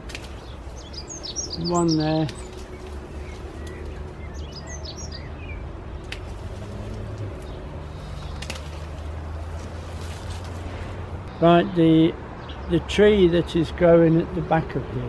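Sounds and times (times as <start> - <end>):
birds chirping: 0.0 - 14.8
hand pruners snipping stems: 1.6 - 4.1, 6.0 - 10.6.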